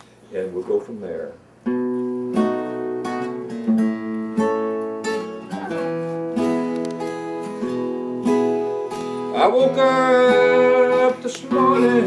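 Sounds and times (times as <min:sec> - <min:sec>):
acoustic guitars strumming chords: 0:01.6 - 0:12.0.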